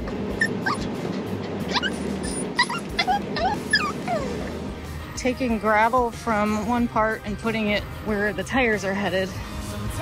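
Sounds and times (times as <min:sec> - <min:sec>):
small dog whimpering: 0:00.3 - 0:04.6.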